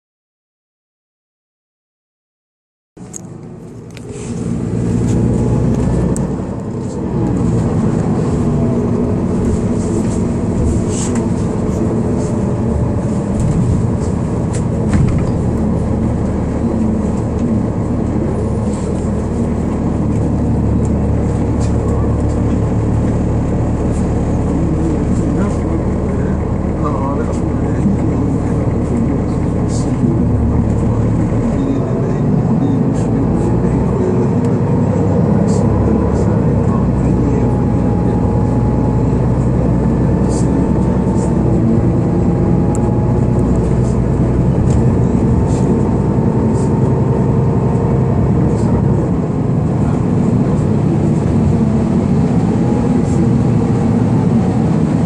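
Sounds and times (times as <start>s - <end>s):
bus engine drone: 3.0s - 55.0s
rising drivetrain whine: 3.0s - 55.0s.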